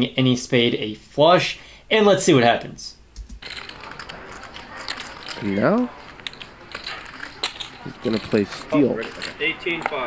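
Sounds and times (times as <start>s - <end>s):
poker chips clicking: 3.4s - 10.0s.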